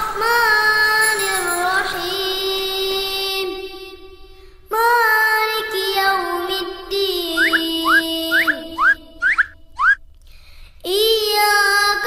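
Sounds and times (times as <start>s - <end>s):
soft held synth tone: 0.2s - 2.6s
whistle-like upward swoops: 7.3s - 10.0s.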